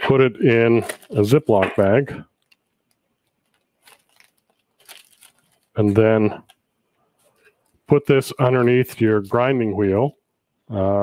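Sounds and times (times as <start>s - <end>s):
plastic bag crinkling: 0.8s - 6.6s.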